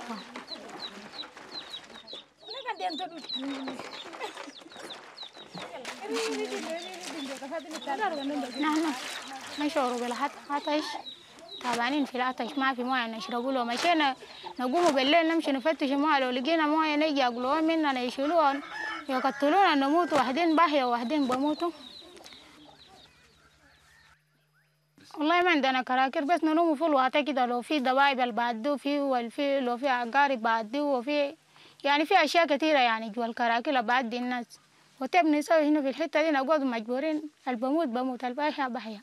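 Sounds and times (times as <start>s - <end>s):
woman speaking: 0.0s - 1.3s, 1.9s - 4.8s, 5.6s - 22.2s, 25.1s - 39.0s
bird chirping: 0.0s - 18.0s, 19.9s - 25.0s
rooster crowing: 18.2s - 20.6s.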